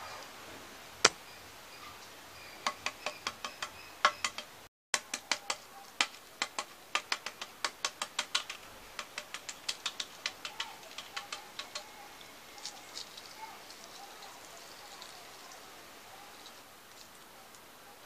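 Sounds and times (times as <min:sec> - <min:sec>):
eggshells cracking: 0:05.0 - 0:11.9.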